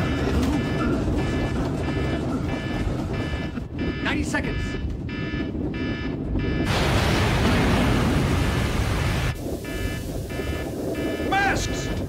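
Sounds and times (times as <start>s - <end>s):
buzzing alarm pulses: 0.0s - 12.0s
loud roaring blast: 6.6s - 11.1s.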